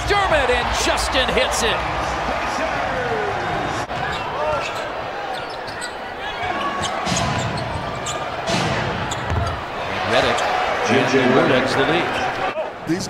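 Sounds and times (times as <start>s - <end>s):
sneakers squeaking: 3.9s - 10.7s.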